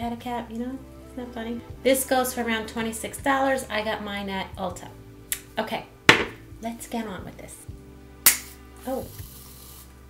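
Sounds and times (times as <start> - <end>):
aerosol can click: 8.3 - 8.6
aerosol can hissing: 8.3 - 10.0.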